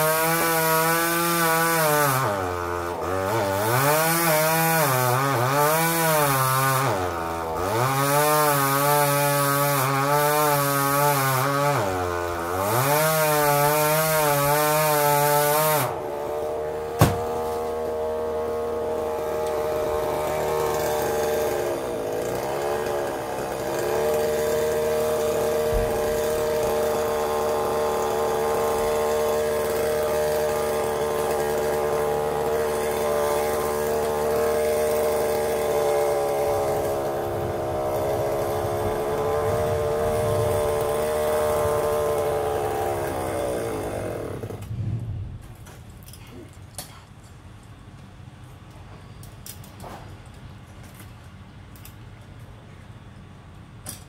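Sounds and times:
chainsaw running: 0.0s - 44.8s
sharp knock: 17.0s - 17.3s.

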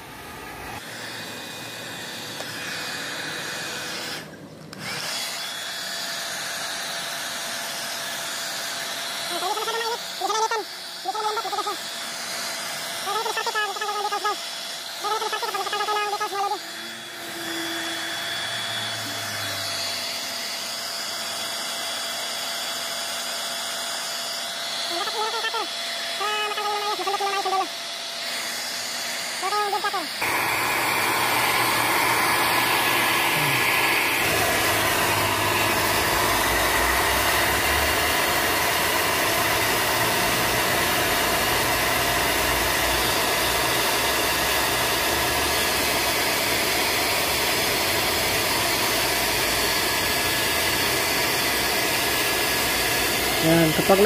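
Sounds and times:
hair dryer blowing: 0.0s - 54.0s.

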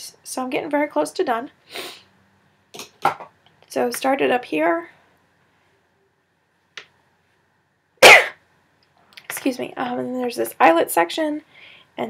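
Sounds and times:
woman coughing: 8.0s - 8.4s.

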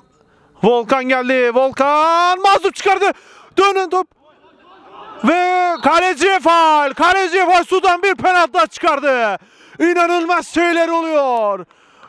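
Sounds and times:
man speaking: 0.6s - 4.1s, 5.2s - 11.6s.

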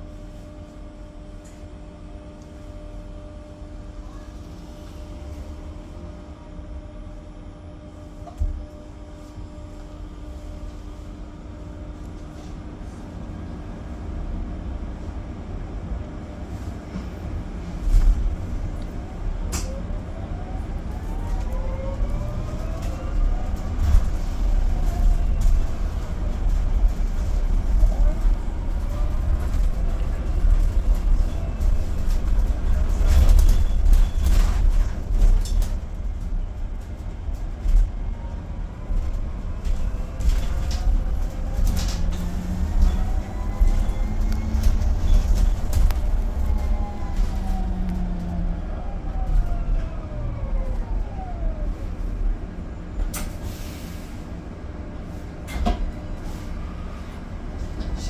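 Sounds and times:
bus road rumble: 0.0s - 58.0s.

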